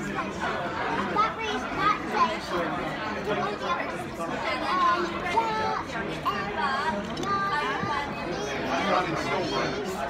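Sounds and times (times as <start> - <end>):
murmur of diners' voices: 0.0 - 10.0.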